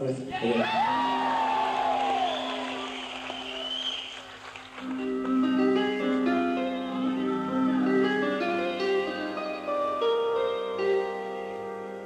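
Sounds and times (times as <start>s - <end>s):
live rock instrumental music: 4.8s - 12.0s.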